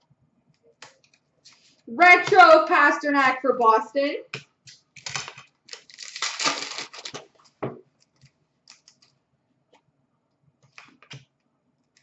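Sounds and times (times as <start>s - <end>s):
wrapper ripping: 5.0s - 7.3s.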